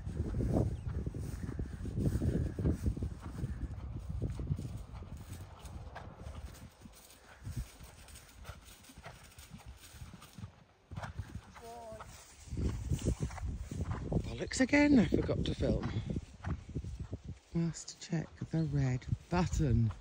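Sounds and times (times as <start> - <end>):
horse hoofbeats on grass: 0.0 - 20.0.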